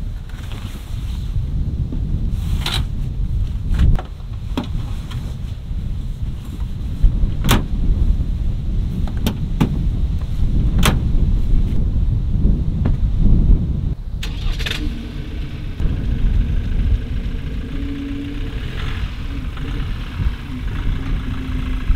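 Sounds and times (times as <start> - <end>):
low rumble: 0.0 - 21.9
diesel engine starting and idling: 14.2 - 21.9.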